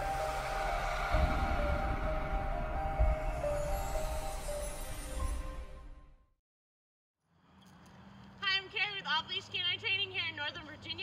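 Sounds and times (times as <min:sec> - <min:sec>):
deep bass hit: 0:00.0 - 0:04.4
logo intro music: 0:00.0 - 0:06.3.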